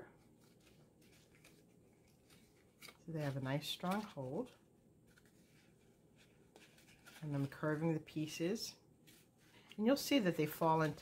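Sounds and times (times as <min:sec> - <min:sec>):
cardstock rustling: 0:00.2 - 0:08.3.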